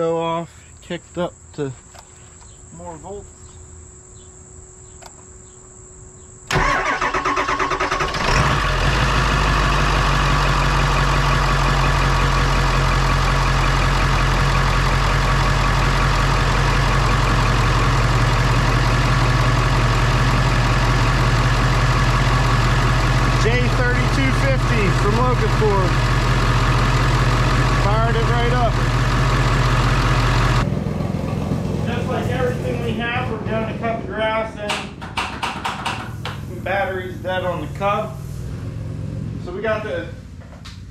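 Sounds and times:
crickets chirping: 0:00.0 - 0:08.0
diesel engine cranking then idling: 0:06.5 - 0:40.4.

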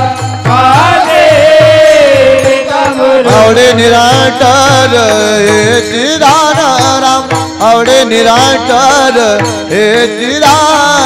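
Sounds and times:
hand cymbals: 0:00.0 - 0:11.0
men singing in chorus: 0:00.0 - 0:11.0
steady low drum beat: 0:00.0 - 0:11.0.

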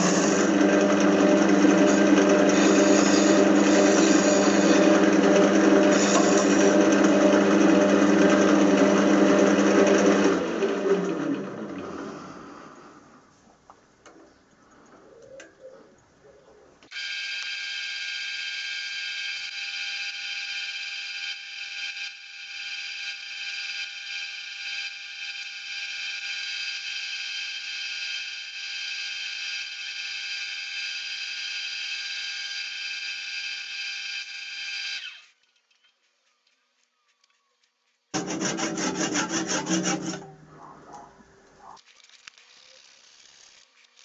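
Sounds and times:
pull saw rasping through wood: 0:00.0 - 0:12.2, 0:38.2 - 0:41.5
wood lathe whining: 0:00.0 - 0:12.8, 0:38.2 - 0:41.7.

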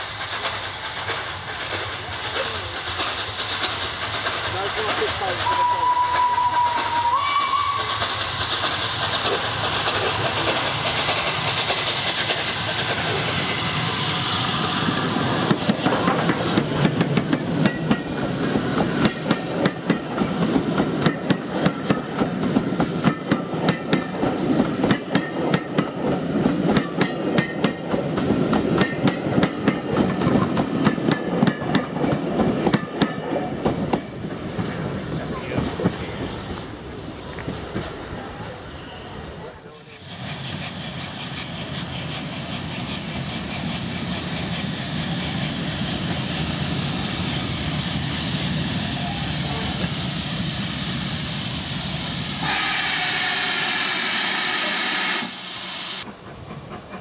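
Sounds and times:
train wheels clicking over rail joints: 0:00.0 - 0:38.1, 0:39.6 - 0:51.1, 0:56.0 - 0:57.0
steam locomotive exhaust rush: 0:00.0 - 0:57.0.

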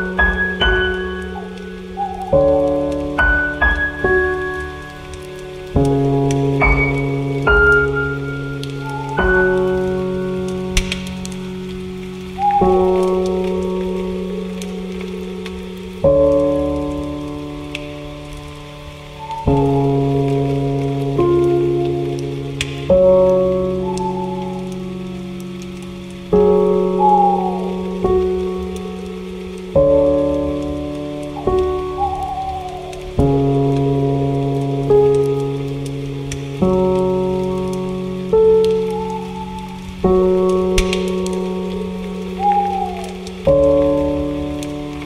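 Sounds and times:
falling bird calls: 0:00.0 - 0:05.8, 0:06.5 - 0:20.4, 0:22.8 - 0:25.4, 0:26.2 - 0:35.7, 0:36.9 - 0:45.0
faint steady hiss: 0:00.0 - 0:45.0
soft slow piano music: 0:00.0 - 0:45.0
scattered ticks: 0:34.9 - 0:45.0.

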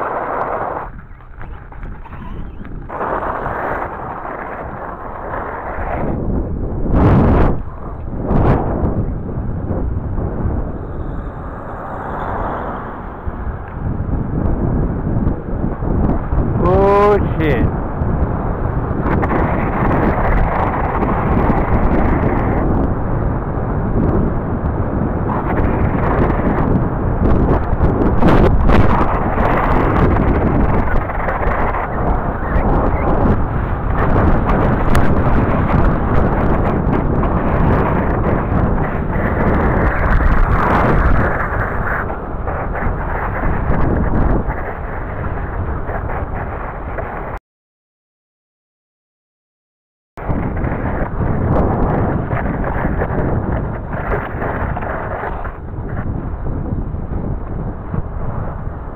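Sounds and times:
wind buffeting microphone: 0:00.0 - 0:47.4, 0:50.2 - 0:58.9.

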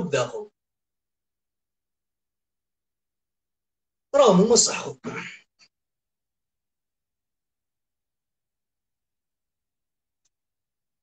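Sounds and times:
man speaking: 0:00.0 - 0:00.6, 0:04.1 - 0:05.7.

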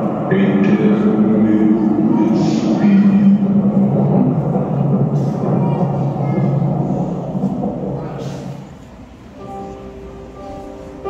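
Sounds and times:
loud low rumble: 0:00.0 - 0:11.0.

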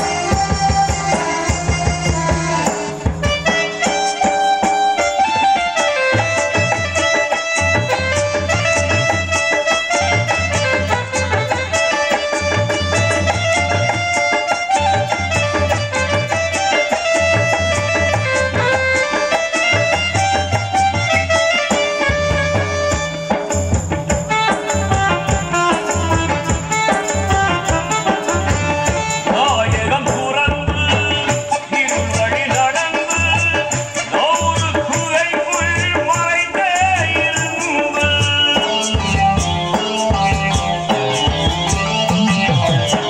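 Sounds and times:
electronic keyboard melody: 0:00.0 - 0:29.5, 0:37.6 - 0:43.0
hand drum strokes: 0:00.0 - 0:43.0
tabla: 0:00.0 - 0:43.0.

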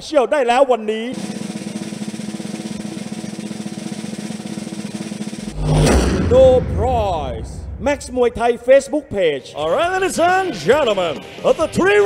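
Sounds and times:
reveal hit with deep boom: 0:05.4 - 0:08.9.

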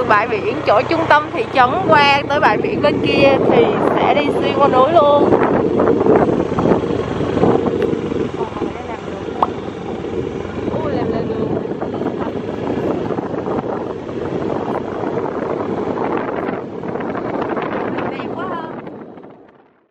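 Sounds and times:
small motorbike running: 0:00.0 - 0:19.6
wind buffeting microphone: 0:00.0 - 0:19.9.

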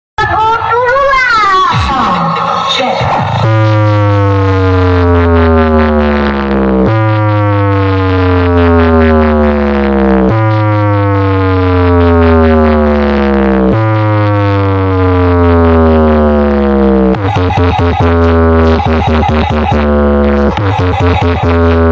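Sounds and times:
heavy bass: 0:00.2 - 0:21.9
falling test tone: 0:00.8 - 0:21.9.

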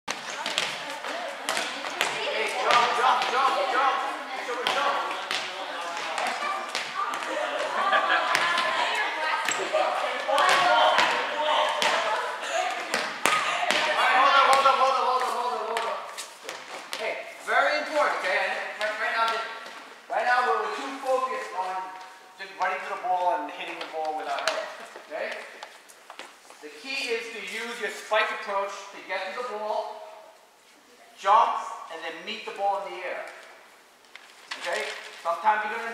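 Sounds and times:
players chatting and calling: 0:00.1 - 0:29.8
volleyball smacks: 0:09.4 - 0:12.2.

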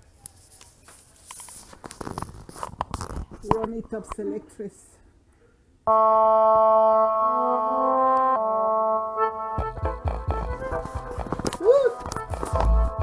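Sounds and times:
microphone handling noise: 0:01.6 - 0:04.0, 0:10.3 - 0:13.0
person speaking: 0:03.4 - 0:05.1, 0:11.4 - 0:12.8
keyboard-led music: 0:05.9 - 0:13.0.

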